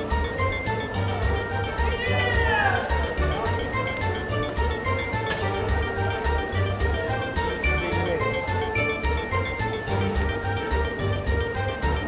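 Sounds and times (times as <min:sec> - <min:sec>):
carnival circus music: 0:00.0 - 0:12.0.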